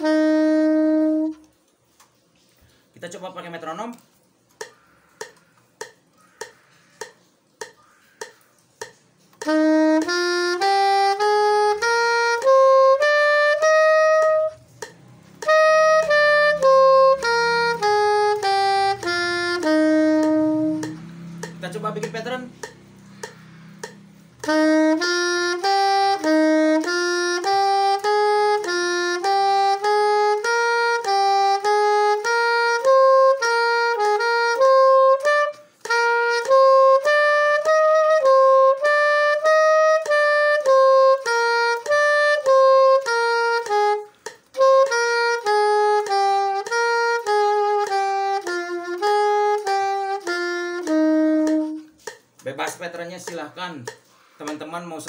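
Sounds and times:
soprano saxophone playing scale: 0:00.0 - 0:02.6, 0:08.9 - 0:52.2.

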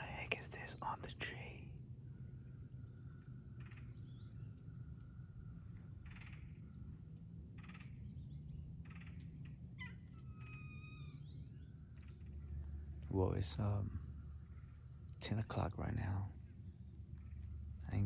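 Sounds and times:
low background rumble: 0:00.0 - 0:18.0.

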